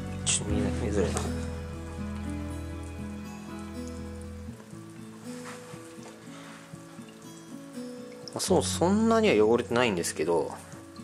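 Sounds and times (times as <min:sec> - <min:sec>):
background music: 0:00.0 - 0:11.0
scratchy hiss of cleaner on glass: 0:05.3 - 0:07.0.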